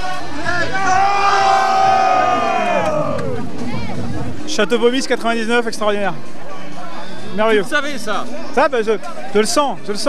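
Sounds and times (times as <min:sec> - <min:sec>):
men shouting a long cheer: 0:00.4 - 0:03.4.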